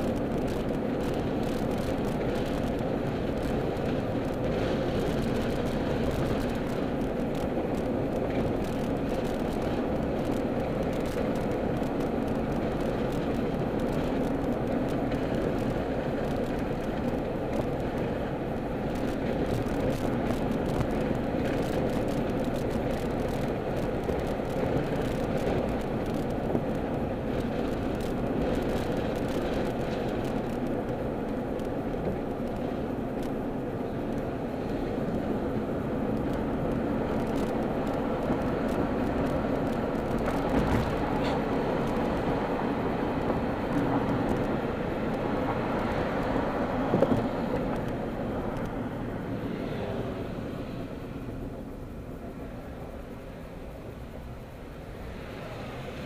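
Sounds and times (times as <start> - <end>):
car road and engine noise: 0.0 - 56.0.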